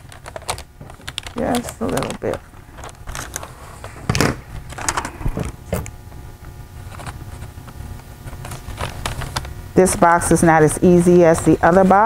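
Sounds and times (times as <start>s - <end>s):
wrapping paper rustling: 0.0s - 4.0s.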